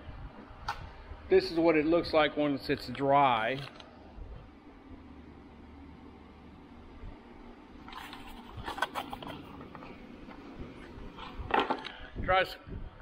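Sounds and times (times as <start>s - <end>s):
faint background hum: 0.0s - 13.0s
light clicks and handling noise: 2.7s - 3.9s.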